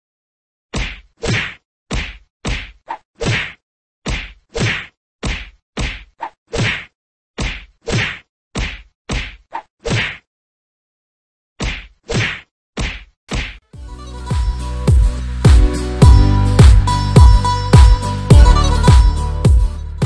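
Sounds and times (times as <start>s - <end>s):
punch hits: 0.7s - 10.2s, 11.6s - 13.6s.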